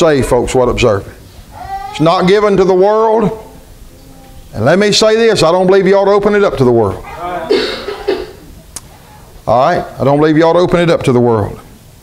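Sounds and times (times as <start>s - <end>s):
person coughing: 7.2s - 8.5s.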